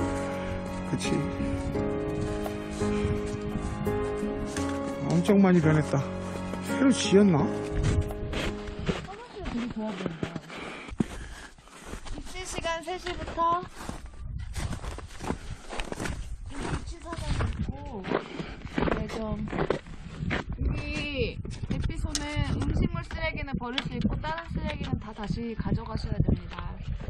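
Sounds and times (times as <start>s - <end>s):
background music: 0.0s - 9.9s.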